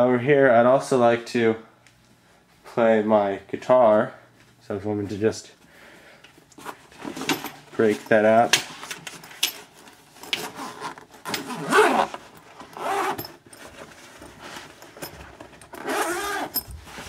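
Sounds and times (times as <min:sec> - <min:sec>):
rustling and handling knocks: 0:06.6 - 0:17.0
gig bag zipper opening: 0:10.4 - 0:13.4, 0:15.7 - 0:16.7.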